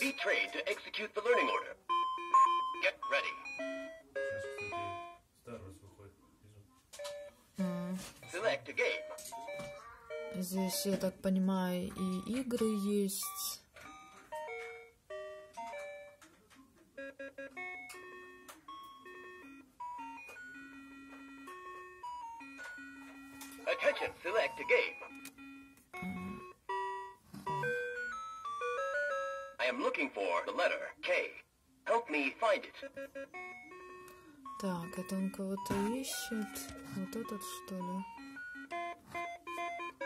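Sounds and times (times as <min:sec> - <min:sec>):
toy electronic beeping melody: 0:00.0 - 0:05.2, 0:07.0 - 0:16.2, 0:16.9 - 0:29.6, 0:32.7 - 0:40.0.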